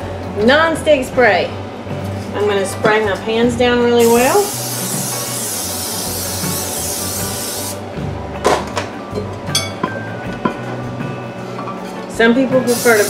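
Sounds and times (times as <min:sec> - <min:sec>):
background music: 0:00.0 - 0:13.0
cooking spray hissing: 0:04.0 - 0:07.8, 0:12.7 - 0:13.0.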